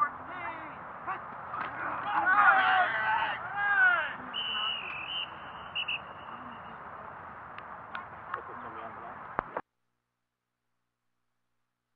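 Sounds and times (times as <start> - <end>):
whistle blasts: 4.3 - 6.4.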